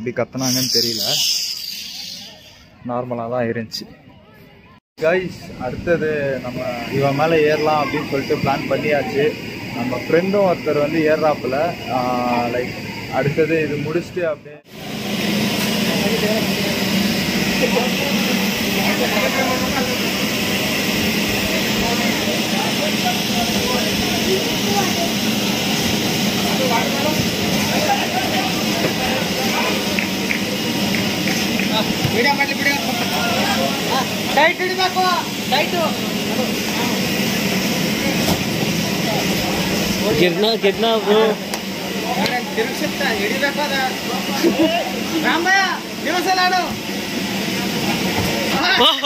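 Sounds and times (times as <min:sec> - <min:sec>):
air blower rushing: 0:00.3 - 0:02.7, 0:05.2 - 0:49.0
machinery droning: 0:05.0 - 0:49.0
faint voices: 0:15.7 - 0:46.8.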